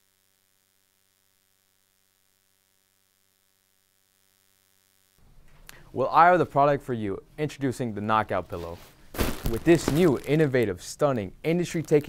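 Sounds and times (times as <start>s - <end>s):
faint electrical hum: 0.0s - 12.0s
person speaking: 5.9s - 12.0s.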